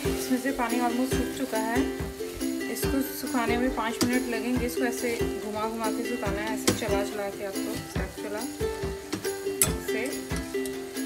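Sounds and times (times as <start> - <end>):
background music with beat: 0.0 - 11.0.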